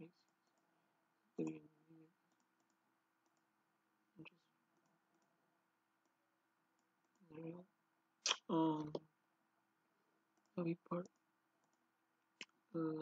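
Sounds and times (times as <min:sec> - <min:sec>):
computer mouse clicks: 0:00.2 - 0:00.7, 0:02.3 - 0:03.5, 0:06.0 - 0:07.4, 0:10.3 - 0:11.8.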